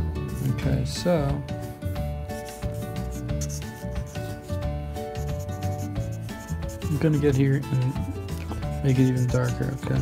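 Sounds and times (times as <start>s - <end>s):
marker scratching on paper: 1.6s - 10.0s.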